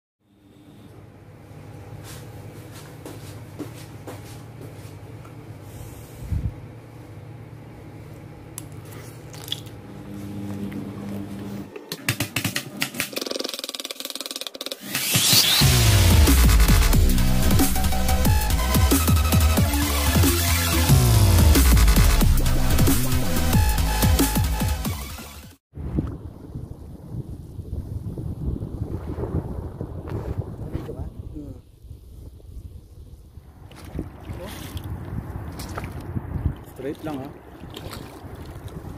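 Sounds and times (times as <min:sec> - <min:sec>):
wind buffeting microphone: 0:25.8 - 0:38.9.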